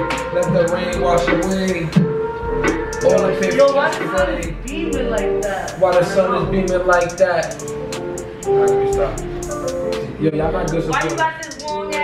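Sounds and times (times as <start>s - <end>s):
hip-hop song with vocals: 0.0s - 12.0s.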